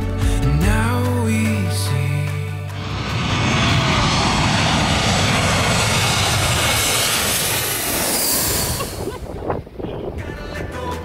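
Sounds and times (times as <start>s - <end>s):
jet airliner flying low: 2.5s - 10.2s.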